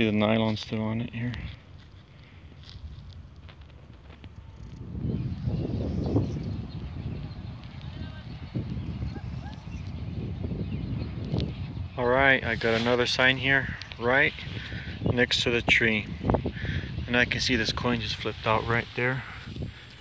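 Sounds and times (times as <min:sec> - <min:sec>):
wind buffeting microphone: 0:00.0 - 0:20.0
footsteps on grass: 0:00.5 - 0:04.9, 0:12.4 - 0:14.8.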